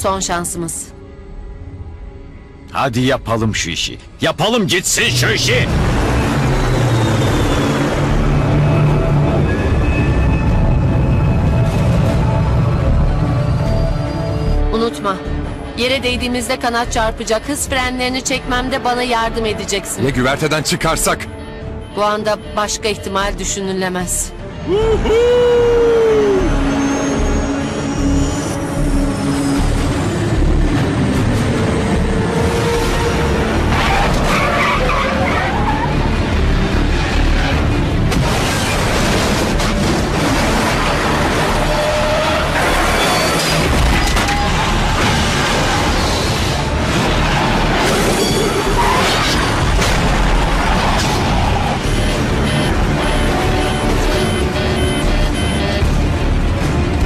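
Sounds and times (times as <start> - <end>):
dramatic orchestral music: 0.0 - 57.0
tyres skidding: 26.4 - 57.0.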